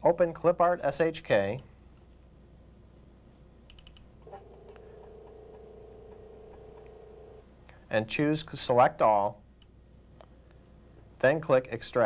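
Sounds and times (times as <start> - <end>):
floppy disk drive spinning: 4.2 - 7.4.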